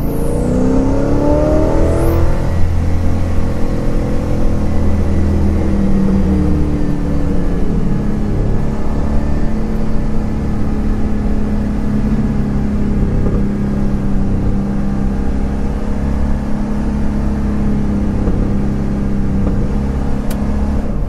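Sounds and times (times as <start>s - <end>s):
car engine cruising: 0.0s - 21.0s
road noise: 0.0s - 21.0s.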